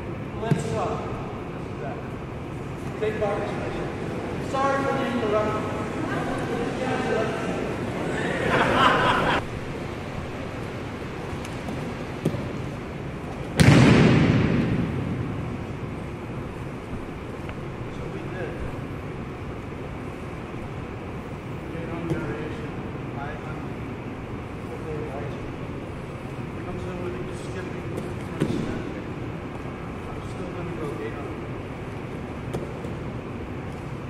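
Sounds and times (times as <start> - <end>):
low room noise: 0.0 - 34.0.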